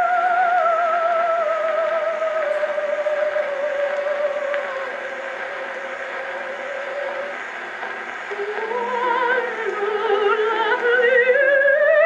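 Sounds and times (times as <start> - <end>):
record surface hiss: 0.0 - 12.0
soprano singing on phonograph: 0.0 - 12.0.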